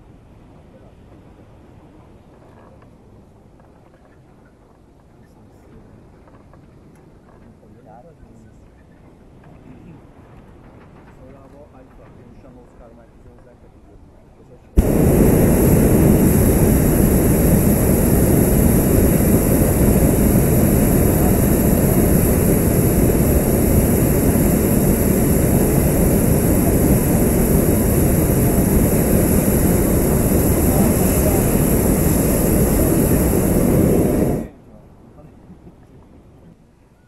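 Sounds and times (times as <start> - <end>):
propane burner roaring: 14.8 - 34.5.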